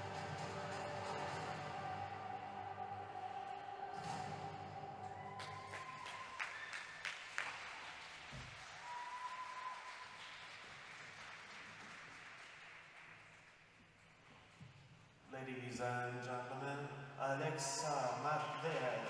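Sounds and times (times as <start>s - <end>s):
audience applause: 0.0s - 2.2s, 4.8s - 13.7s, 18.0s - 19.0s
figure skating music: 0.0s - 6.2s.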